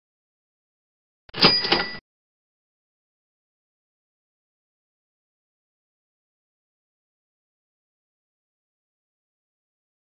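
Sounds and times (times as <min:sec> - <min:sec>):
quick ringing hits: 0:01.4 - 0:02.0.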